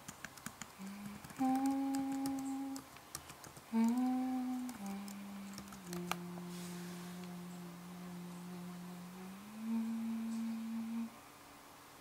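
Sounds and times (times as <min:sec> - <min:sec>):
sustained low tone: 0:04.0 - 0:11.2.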